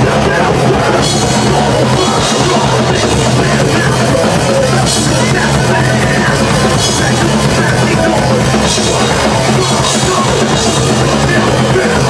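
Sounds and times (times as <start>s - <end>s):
drum kit: 0.0s - 12.0s
electric guitars: 0.0s - 12.0s
thrash metal band playing: 0.0s - 12.0s.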